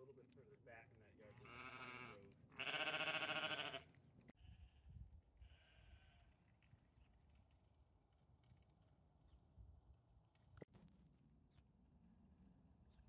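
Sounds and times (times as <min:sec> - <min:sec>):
sheep bleating: 0:01.4 - 0:04.8.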